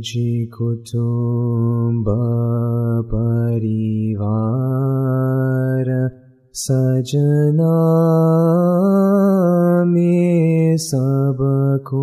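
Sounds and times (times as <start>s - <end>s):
man chanting: 0.0s - 12.0s.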